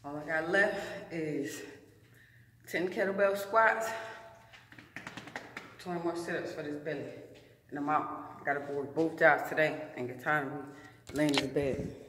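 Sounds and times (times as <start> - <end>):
person speaking: 7.8 - 12.0.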